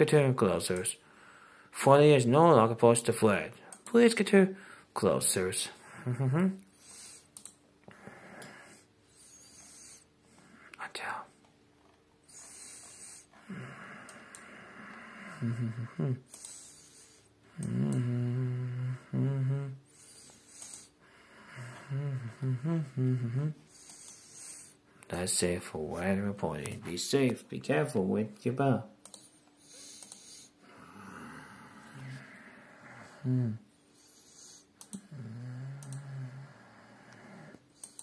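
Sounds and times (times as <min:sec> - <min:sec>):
person breathing noisily: 0:01.0 - 0:01.7, 0:12.2 - 0:25.1, 0:29.6 - 0:34.8
person breathing softly: 0:01.0 - 0:01.8, 0:04.6 - 0:05.0, 0:29.2 - 0:34.8
faint clicks: 0:29.0 - 0:30.3, 0:34.8 - 0:35.1, 0:35.8 - 0:36.1, 0:37.8 - 0:38.0.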